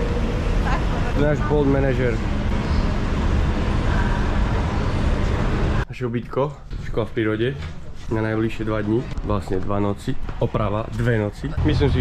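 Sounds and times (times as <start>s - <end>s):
traffic rumble of buses and cars: 0.0s - 12.0s.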